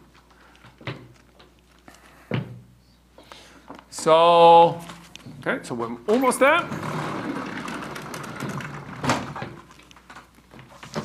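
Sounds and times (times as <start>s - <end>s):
sliding chalkboard panel rumbling: 6.6s - 9.8s.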